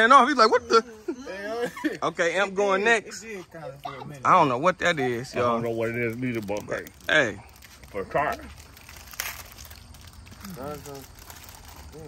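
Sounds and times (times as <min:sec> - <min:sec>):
men talking: 0:00.0 - 0:08.7, 0:10.4 - 0:11.2
snack wrapper crinkling: 0:05.1 - 0:12.0.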